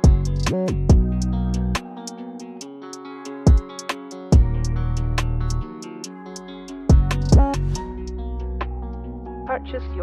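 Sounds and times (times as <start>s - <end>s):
deep bass hits: 0.0s - 1.8s, 4.4s - 5.6s, 6.9s - 8.8s
hi-hat ticks: 0.0s - 7.8s
sad piano melody: 5.6s - 10.0s.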